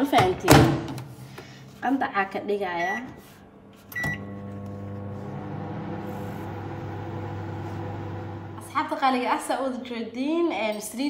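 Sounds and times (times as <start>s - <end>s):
microwave control panel beeping: 4.0s - 4.7s
microwave oven humming: 4.0s - 8.7s.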